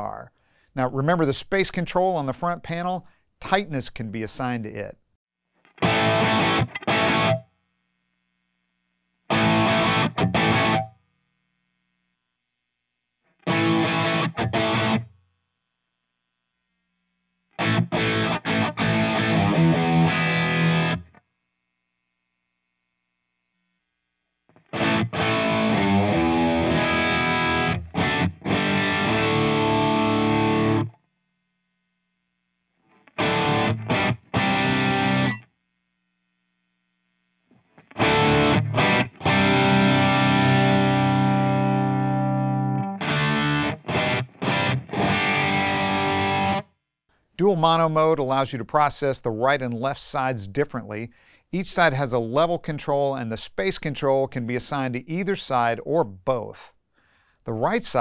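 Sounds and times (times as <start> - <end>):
distorted electric guitar riffs: 5.6 - 7.5, 9.3 - 11.4, 13.4 - 15.2, 17.6 - 21.2, 24.5 - 31.0, 32.8 - 35.5, 37.5 - 46.7.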